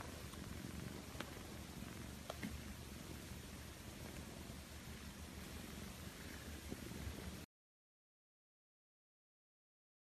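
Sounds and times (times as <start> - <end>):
cat purring: 0.0 - 7.5
faint clicks: 0.2 - 1.5, 2.2 - 2.7.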